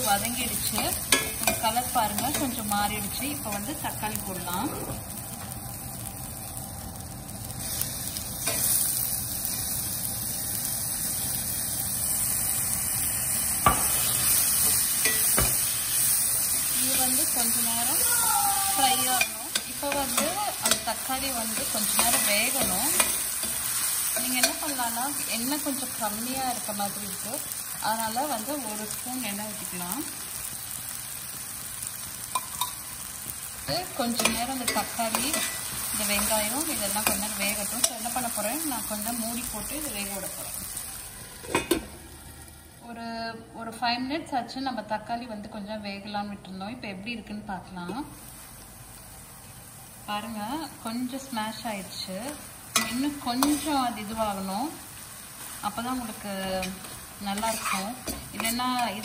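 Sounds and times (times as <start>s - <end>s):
onions sizzling in hot oil: 0.0s - 59.0s.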